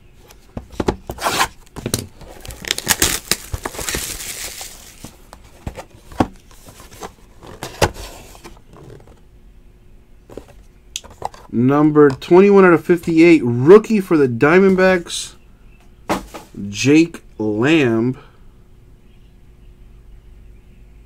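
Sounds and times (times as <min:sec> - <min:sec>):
plastic shrink-wrap tearing: 0:02.1 - 0:05.1.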